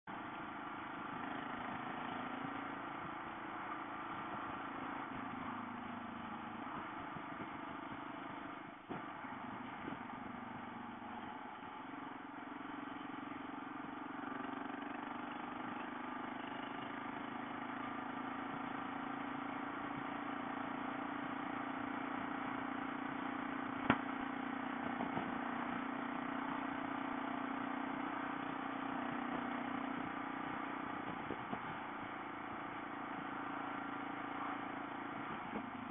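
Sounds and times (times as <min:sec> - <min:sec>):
motorcycle engine cruising: 0:00.1 - 0:35.9
wind and road noise: 0:00.1 - 0:35.9.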